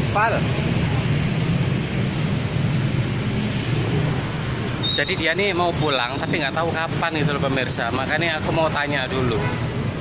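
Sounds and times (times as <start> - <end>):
motorbike engines running: 0.0 - 10.0
street traffic rumble: 0.0 - 10.0.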